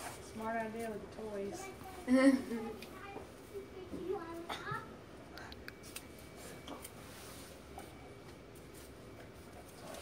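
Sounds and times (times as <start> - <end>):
faint background talking: 0.0 - 8.3
child's voice: 1.4 - 5.0.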